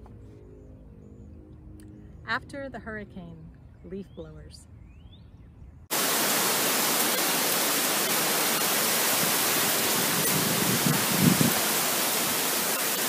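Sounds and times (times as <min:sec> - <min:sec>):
strong wind: 0:05.4 - 0:13.0
heavy rain: 0:05.9 - 0:13.0.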